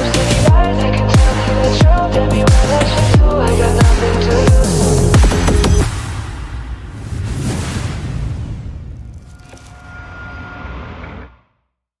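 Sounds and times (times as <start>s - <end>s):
low rumble: 5.8s - 11.5s.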